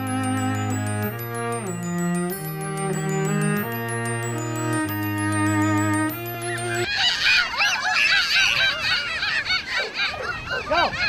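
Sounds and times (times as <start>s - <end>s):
music: 0.0s - 6.9s.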